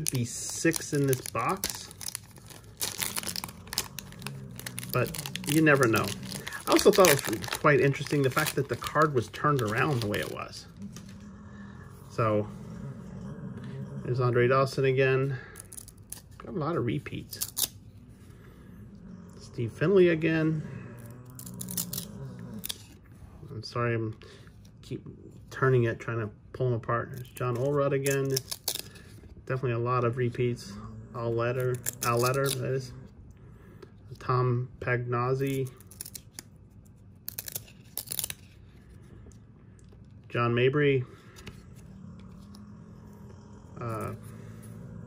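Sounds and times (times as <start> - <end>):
cards being shuffled in hands: 0.0 - 11.2, 27.2 - 29.3, 35.4 - 38.9
low steady hum: 0.0 - 45.0
murmured voice: 3.1 - 15.6, 40.8 - 45.0.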